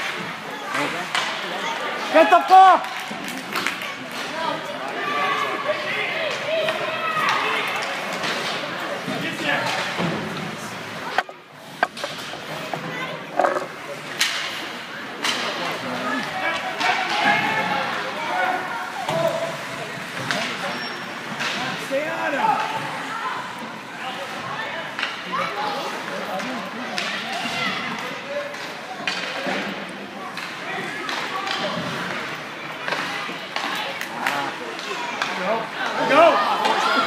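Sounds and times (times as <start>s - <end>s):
spectators talking and calling out: 0.0s - 37.0s
hockey sticks knocking puck: 6.3s - 17.2s, 25.0s - 25.2s, 26.4s - 37.0s.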